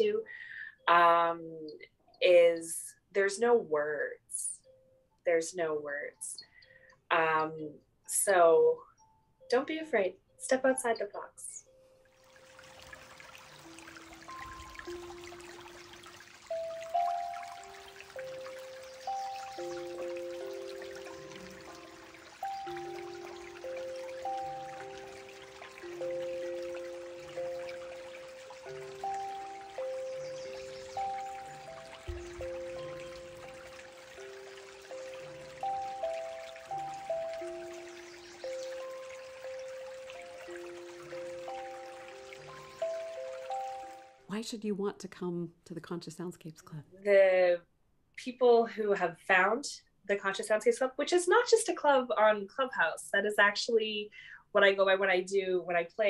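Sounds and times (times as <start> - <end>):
steel tongue drum melody: 7.2 - 44.3
stream water trickling: 11.7 - 44.3.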